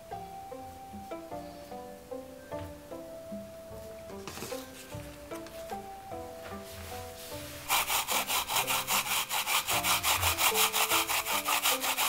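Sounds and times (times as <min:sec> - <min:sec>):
pear grating on grater: 0:07.6 - 0:12.0.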